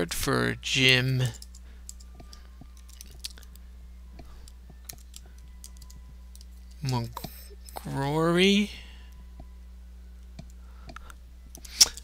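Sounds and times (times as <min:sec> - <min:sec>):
low electrical hum: 0:00.0 - 0:12.0
keyboard typing: 0:04.9 - 0:06.5.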